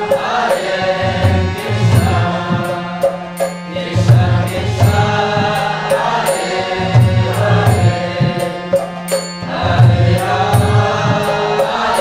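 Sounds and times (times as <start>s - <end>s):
chorus of voices singing: 0.0s - 12.0s
harmonium chords: 0.0s - 12.0s
hand cymbals: 1.6s - 12.0s.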